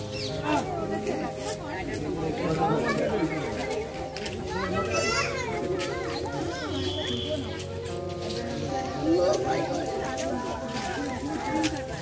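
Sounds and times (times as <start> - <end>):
crowd talking and calling out: 0.0 - 12.0
children shouting: 4.6 - 7.1.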